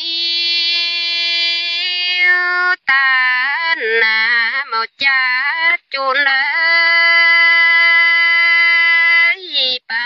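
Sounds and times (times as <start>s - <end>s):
woman singing a long note: 0.0s - 4.8s.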